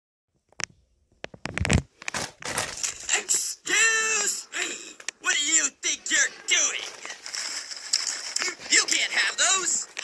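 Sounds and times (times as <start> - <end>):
foil snack bag crinkling: 6.5 - 10.0.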